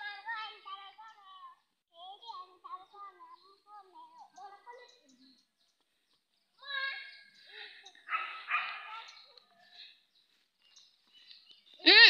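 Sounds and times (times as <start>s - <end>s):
faint children's voices: 0.0s - 12.0s.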